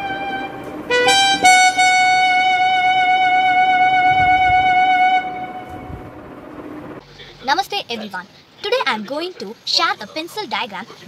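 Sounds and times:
electronic keyboard long note: 0:00.0 - 0:06.9.

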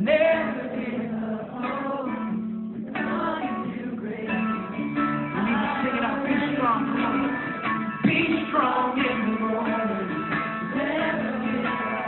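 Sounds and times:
live pop song with singer: 0:00.0 - 0:12.0.

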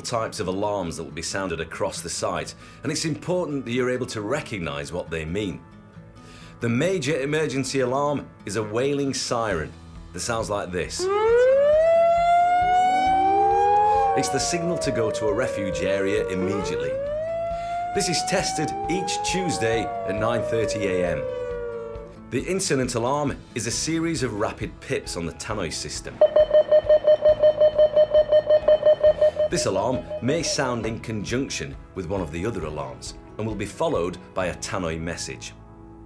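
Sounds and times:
wailing alarm siren: 0:11.0 - 0:22.2, 0:26.2 - 0:30.8.

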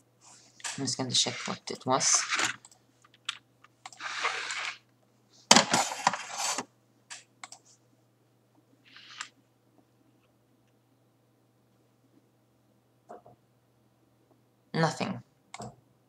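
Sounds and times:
rustling scrapes: 0:01.2 - 0:02.6, 0:04.0 - 0:04.8, 0:05.6 - 0:06.7
keyboard and mouse clicks: 0:02.4 - 0:04.1, 0:07.1 - 0:07.7, 0:15.5 - 0:15.8.

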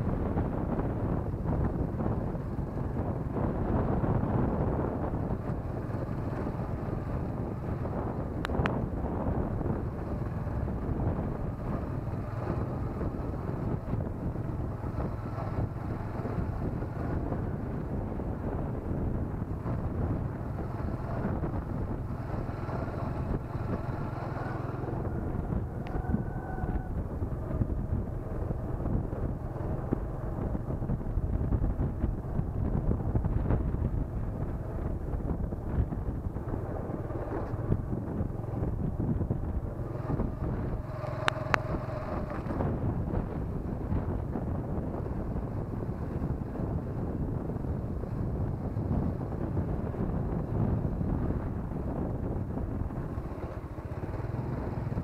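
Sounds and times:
low rumble on dirt track: 0:00.0 - 0:55.0
wind buffeting microphone: 0:00.0 - 0:55.0.

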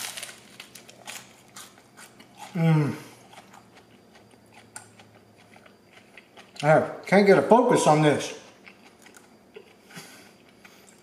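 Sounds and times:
crackles of batter breaking: 0:00.0 - 0:01.4
crunching fried batter: 0:00.0 - 0:06.8.

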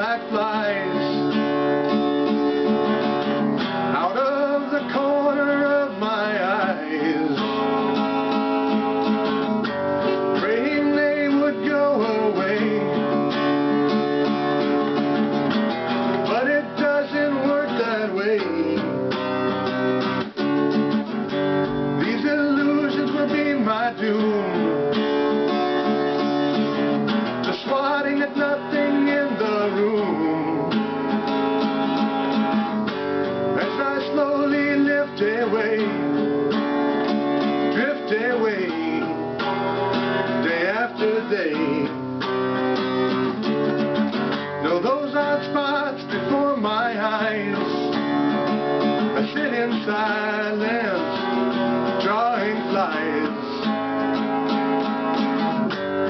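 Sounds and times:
man singing: 0:00.0 - 0:01.5, 0:03.9 - 0:08.3, 0:10.3 - 0:13.3, 0:16.2 - 0:19.2, 0:21.9 - 0:25.0, 0:27.4 - 0:30.8, 0:33.5 - 0:36.2, 0:37.6 - 0:39.6, 0:40.3 - 0:42.0, 0:44.6 - 0:48.1, 0:49.0 - 0:53.7
acoustic guitar strumming: 0:00.0 - 0:56.0.

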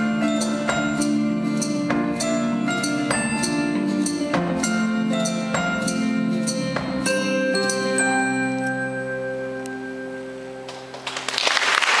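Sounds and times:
acoustic guitar: 0:00.0 - 0:11.2
audience applause: 0:10.7 - 0:12.0.

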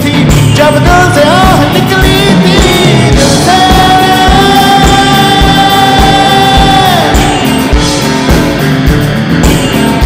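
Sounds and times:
man singing a long high note: 0:00.0 - 0:07.4
bass guitar: 0:00.0 - 0:10.0
steady drum beat: 0:00.0 - 0:10.0.

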